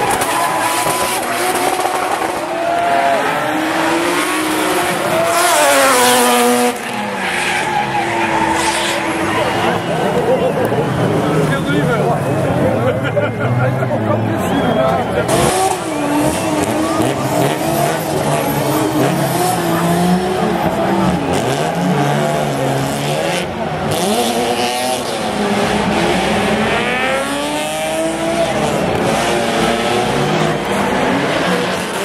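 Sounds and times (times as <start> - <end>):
car engine revving hard: 0.0 - 10.2, 15.1 - 32.0.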